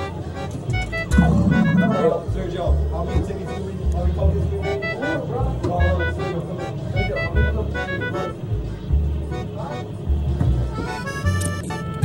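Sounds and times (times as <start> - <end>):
voices: 0.0 - 11.2
electronic arcade music: 0.8 - 2.4
heavy low rumble: 0.8 - 3.0
game machine beeps: 1.1 - 2.1.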